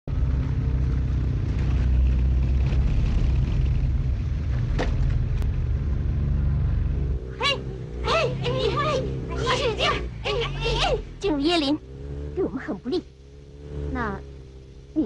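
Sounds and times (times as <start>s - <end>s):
motorcycles driving past: 0.1s - 15.0s
person shouting: 7.4s - 11.0s.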